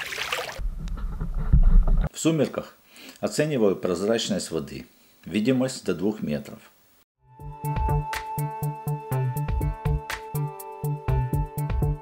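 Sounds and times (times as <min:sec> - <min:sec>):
fish splashing water: 0:00.0 - 0:00.6.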